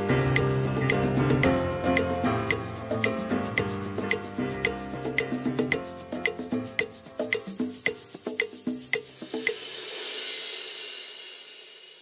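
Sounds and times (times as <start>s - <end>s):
disco house music: 0.0s - 9.6s
crash cymbal ringing: 9.2s - 12.0s.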